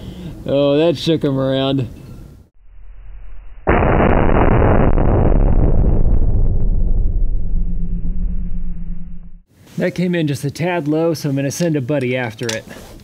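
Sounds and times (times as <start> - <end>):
slowed rifle shot boom: 2.6 - 9.4.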